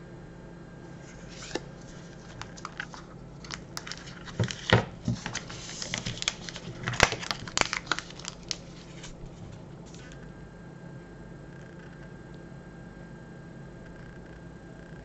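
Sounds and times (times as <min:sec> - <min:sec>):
plastic wrapper crinkling: 0:01.3 - 0:10.2.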